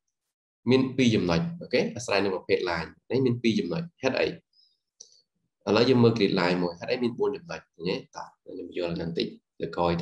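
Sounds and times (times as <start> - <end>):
man speaking: 0.7 - 4.5, 5.6 - 10.0.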